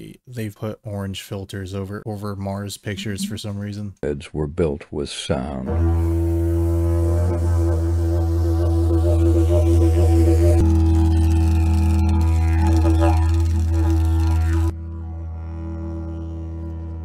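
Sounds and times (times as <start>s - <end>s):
didgeridoo drone: 5.7s - 17.0s.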